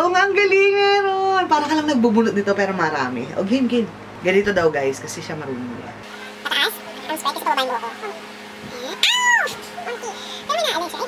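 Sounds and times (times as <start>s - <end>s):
woman yelping in pain: 8.8s - 10.2s.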